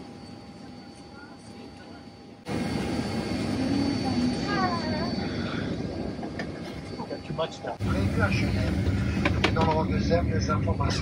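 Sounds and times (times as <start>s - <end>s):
airliner cabin noise: 0.0s - 11.0s.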